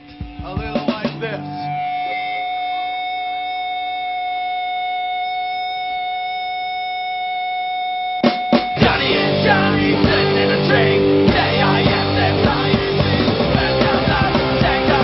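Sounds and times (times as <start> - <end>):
punk rock band playing: 0.0 - 3.2, 8.2 - 15.0
sustained electric guitar tone: 0.0 - 15.0.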